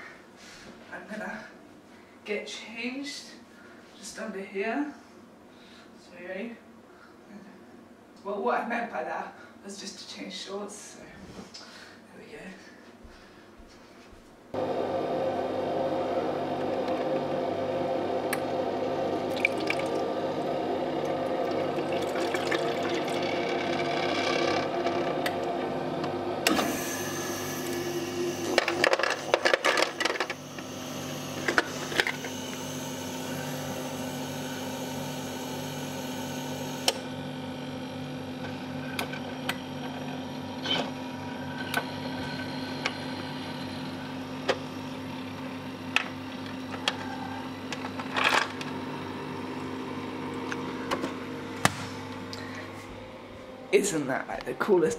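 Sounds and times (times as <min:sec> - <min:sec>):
ice maker humming: 0:14.6 - 0:54.9.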